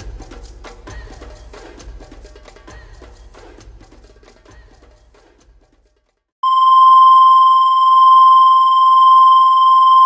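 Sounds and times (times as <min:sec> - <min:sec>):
steady electronic beep tone: 0:06.4 - 0:10.0.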